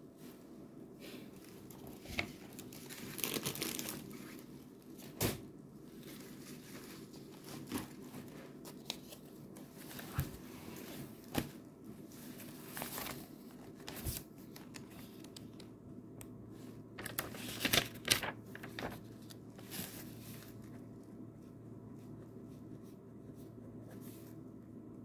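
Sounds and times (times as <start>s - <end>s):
paper rustling and crinkling: 1.4s - 5.3s, 5.9s - 15.8s, 16.6s - 24.4s.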